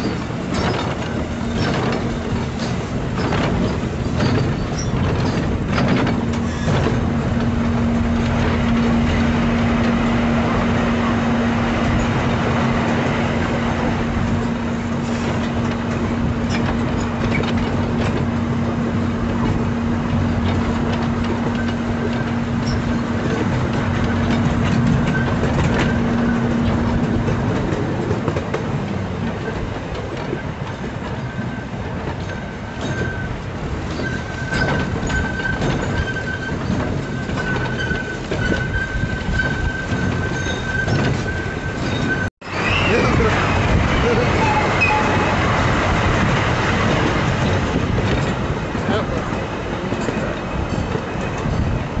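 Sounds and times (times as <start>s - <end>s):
train wheels rumbling on rails: 0.0s - 52.0s
high wheel squeal: 6.3s - 7.0s, 21.5s - 26.8s, 31.2s - 45.6s.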